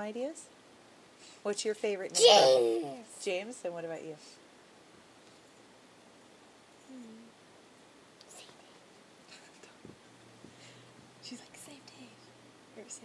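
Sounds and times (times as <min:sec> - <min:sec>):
faint low hum: 0:00.0 - 0:13.0
soft breathy whispering: 0:08.3 - 0:12.3.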